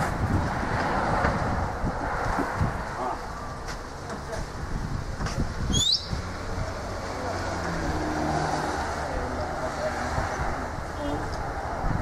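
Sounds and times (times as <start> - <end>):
cars passing by on road: 0.0 - 12.0.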